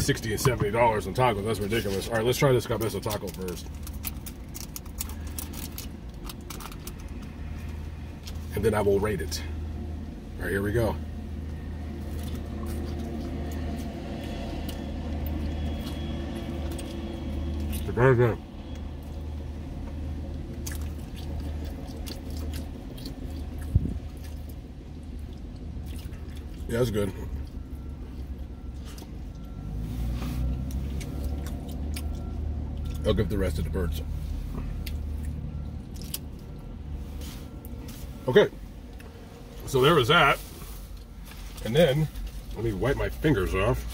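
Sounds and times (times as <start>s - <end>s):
low hum inside car: 0.0s - 43.9s
chewing food: 1.6s - 8.5s, 11.5s - 33.6s, 34.6s - 36.8s
paper packaging crinkling: 3.1s - 7.2s.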